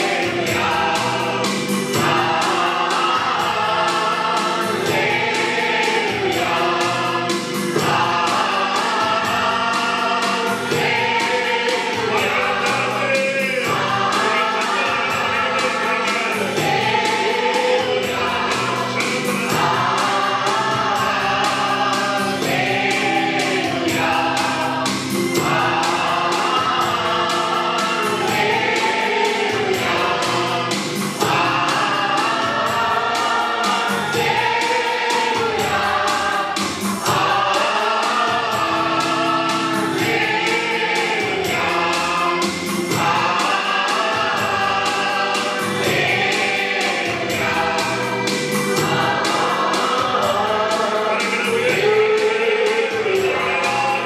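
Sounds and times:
men singing worship song: 0.0 - 54.0
musical accompaniment with beat: 0.0 - 54.0.

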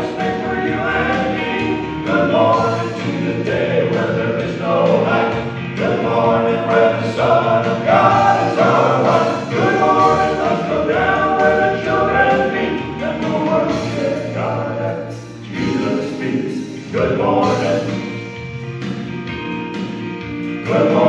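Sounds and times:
male vocal quartet singing gospel: 0.0 - 18.4, 20.6 - 21.0.

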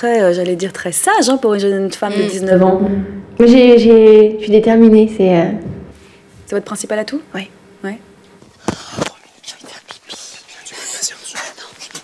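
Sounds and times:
people whispering: 8.6 - 12.0.

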